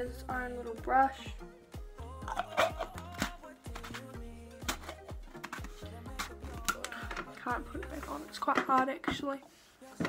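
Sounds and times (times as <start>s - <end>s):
background music: 0.0s - 10.0s
plastic lid clicking and knocking: 4.6s - 7.4s.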